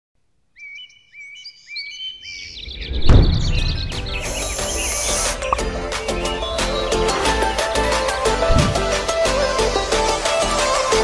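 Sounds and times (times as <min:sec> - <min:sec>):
birds chirping: 0:00.6 - 0:08.9
deep boom: 0:02.5 - 0:04.2, 0:08.3 - 0:09.0.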